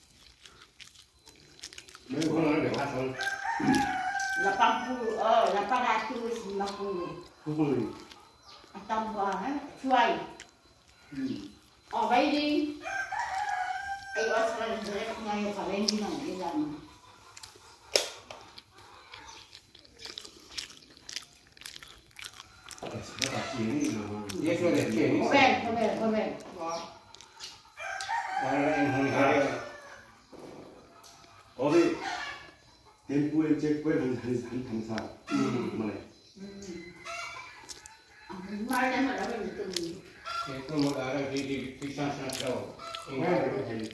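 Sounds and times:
soft chewing: 0.0s - 43.9s
rooster crowing: 2.0s - 19.4s, 20.1s - 43.9s.

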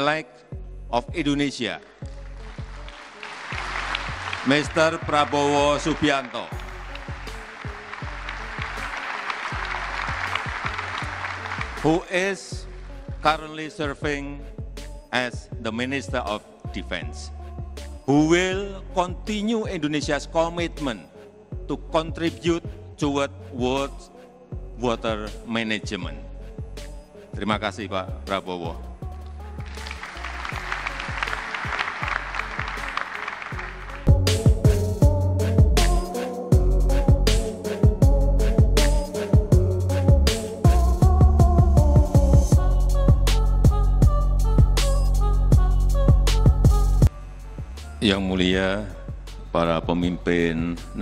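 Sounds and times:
large audience applauding: 2.0s - 12.1s, 29.6s - 34.1s
music with deep drum beat: 3.6s - 12.0s, 12.6s - 16.3s, 29.0s - 33.0s, 33.6s - 48.0s.

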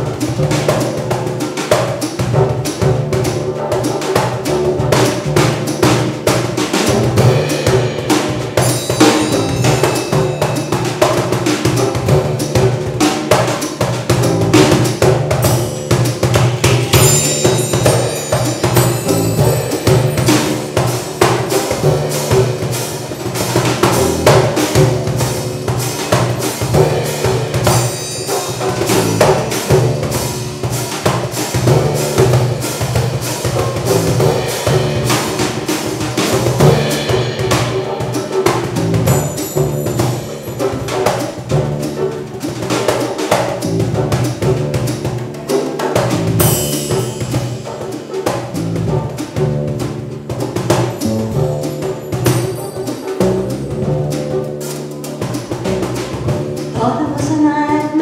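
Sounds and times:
instrumental band with drums: 0.0s - 58.0s.

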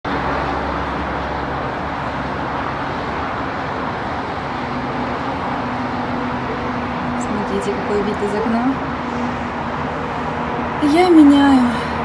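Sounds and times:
highway traffic passing: 0.0s - 12.0s.

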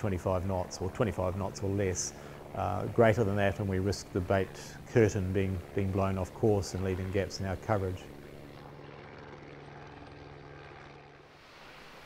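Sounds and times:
helicopter engine and rotor drone: 0.0s - 12.0s.

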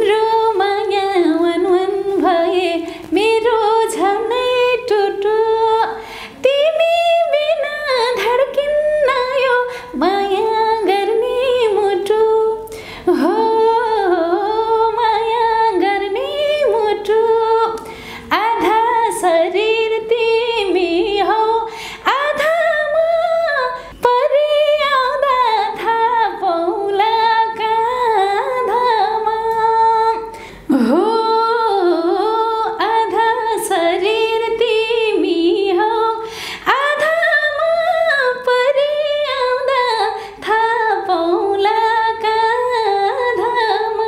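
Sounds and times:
woman singing unaccompanied: 0.0s - 44.0s
singer breathing in: 6.0s - 6.4s, 12.7s - 13.1s, 17.8s - 18.3s, 21.7s - 22.1s, 30.3s - 30.7s, 36.2s - 36.7s.

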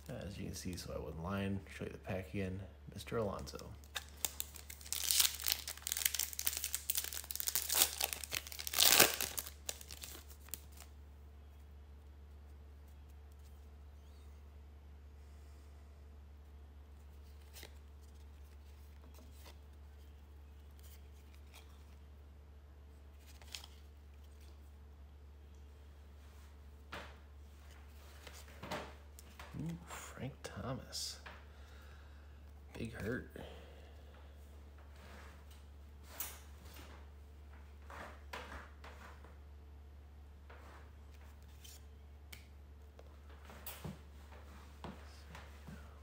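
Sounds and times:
wrapper tearing and crinkling: 3.8s - 10.9s.

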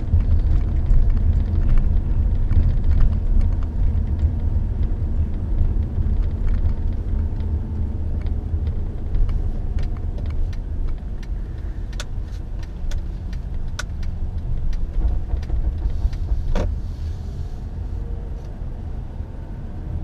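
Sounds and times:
small sharp clicks and rattles: 0.0s - 16.7s
car engine and road rumble: 0.0s - 20.0s.

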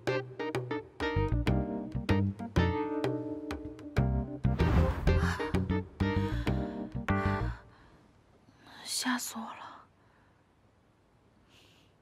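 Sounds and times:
woman whispering: 8.6s - 9.9s.

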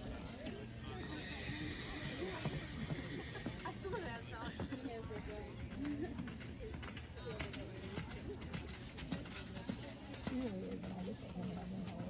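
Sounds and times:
muffled hoofbeats on sand: 0.0s - 12.0s
horse whinnying: 1.0s - 3.6s.

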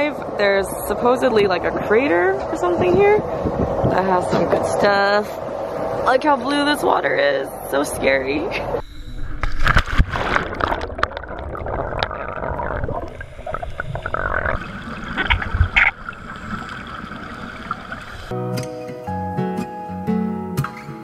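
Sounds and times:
underwater bubbling: 8.6s - 18.3s
water splashing: 9.3s - 18.3s
acoustic guitar music: 18.3s - 21.0s.

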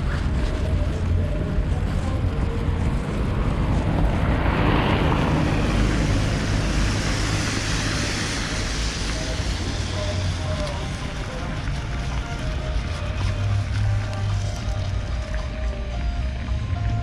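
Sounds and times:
tyres hissing on wet road: 0.0s - 17.0s
wind rumbling on microphone: 0.0s - 17.0s.

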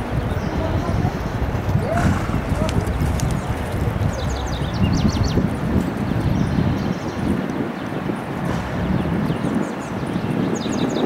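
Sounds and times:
horse hoofbeats galloping: 0.0s - 10.3s
wind noise on microphone: 0.0s - 11.0s.

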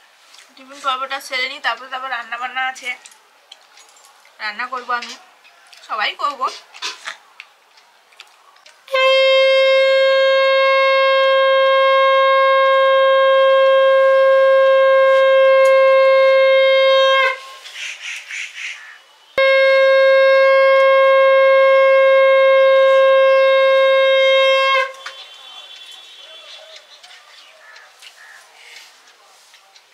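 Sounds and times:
conch shell blasts: 8.9s - 17.6s, 19.4s - 26.5s.

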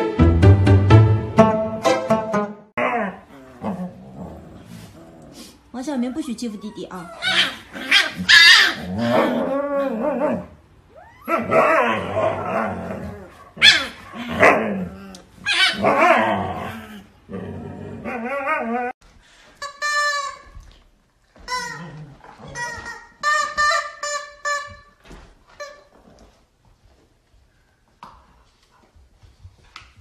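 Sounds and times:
high-pitched yelps and whines: 5.9s - 12.6s, 13.6s - 16.6s
husky dogs yelping and howling: 6.2s - 16.5s.

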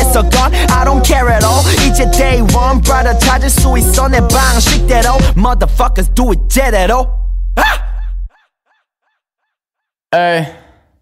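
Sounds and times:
hip-hop beat: 0.0s - 8.0s.

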